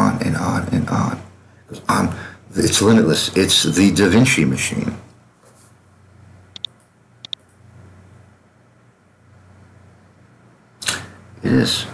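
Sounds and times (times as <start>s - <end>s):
low hum of room tone: 0.0s - 11.9s.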